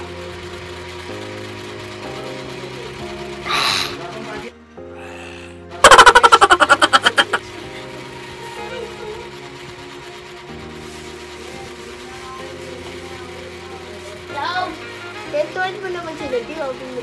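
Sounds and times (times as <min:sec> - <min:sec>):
background music: 0:02.8 - 0:12.0
rapid rattling sound effect: 0:05.8 - 0:07.5.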